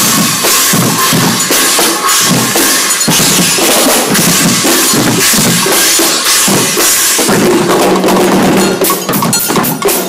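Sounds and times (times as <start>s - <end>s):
drums beating: 0.0s - 10.0s.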